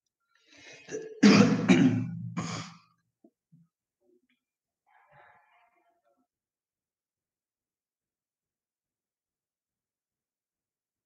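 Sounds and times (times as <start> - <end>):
person clearing throat: 0.8 - 2.9.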